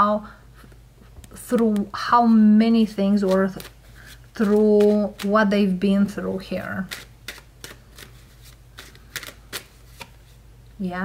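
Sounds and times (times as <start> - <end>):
cards snapping while shuffled: 4.4 - 5.4, 6.9 - 10.2.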